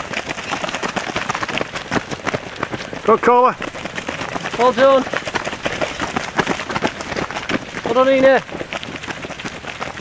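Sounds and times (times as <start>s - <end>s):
running footsteps on path: 0.0s - 10.0s.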